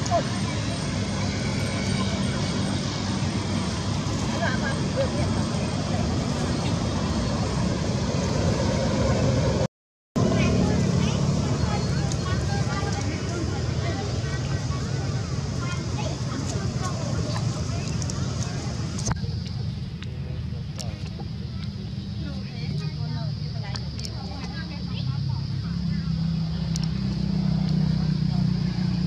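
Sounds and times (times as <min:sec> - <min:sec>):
outdoor background rumble: 0:00.0 - 0:29.0.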